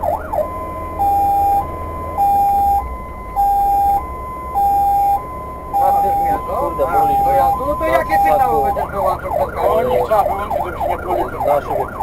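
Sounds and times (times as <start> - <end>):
engine rumble: 0.0 - 12.0
fire engine siren wailing: 0.0 - 12.0.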